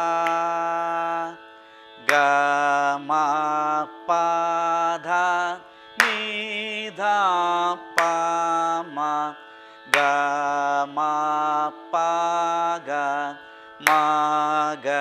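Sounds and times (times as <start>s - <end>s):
man singing vocal exercise: 0.0s - 1.4s, 2.0s - 15.0s.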